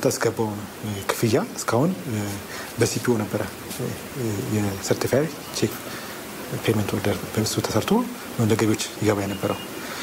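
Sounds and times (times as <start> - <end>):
man talking: 0.0 - 5.9, 6.5 - 9.7.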